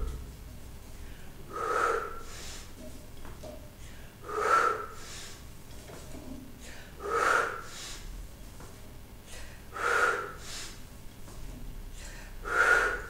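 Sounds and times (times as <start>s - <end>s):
man breathing forcefully: 0.0s - 2.8s, 3.8s - 5.5s, 6.6s - 8.2s, 9.2s - 10.9s, 11.8s - 13.0s.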